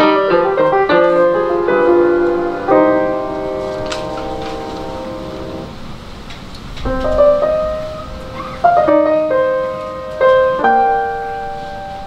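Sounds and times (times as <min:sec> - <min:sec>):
piano chord ringing: 0:00.0 - 0:06.0, 0:06.8 - 0:12.0.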